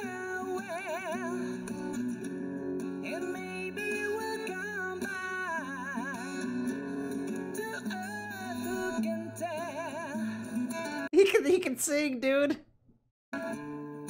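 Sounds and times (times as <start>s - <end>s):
man singing with vibrato: 0.0s - 1.9s, 3.0s - 6.8s, 7.4s - 11.1s
fingerstyle acoustic guitar: 0.0s - 11.1s.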